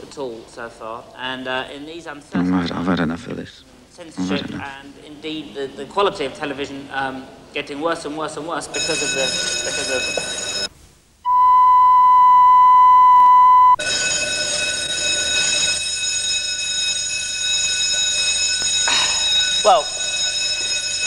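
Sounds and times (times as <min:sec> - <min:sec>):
person speaking: 0:02.2 - 0:03.5, 0:04.1 - 0:04.9
censor bleep: 0:11.2 - 0:13.8.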